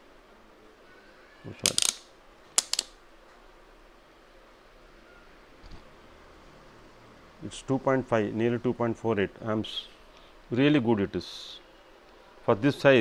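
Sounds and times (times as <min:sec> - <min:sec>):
metal probe clicks and scrapes: 0:01.6 - 0:02.0.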